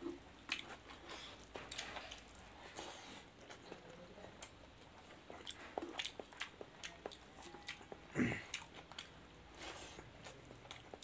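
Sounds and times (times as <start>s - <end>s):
wet chewing and lip smacks: 0.4s - 3.8s, 4.4s - 11.0s.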